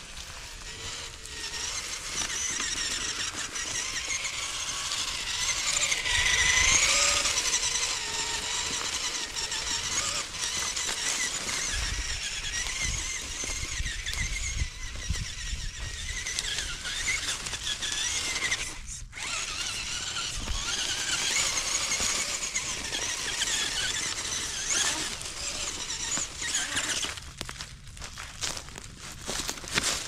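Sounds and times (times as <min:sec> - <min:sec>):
toy car motor whining: 0:00.0 - 0:27.6, 0:28.4 - 0:30.0.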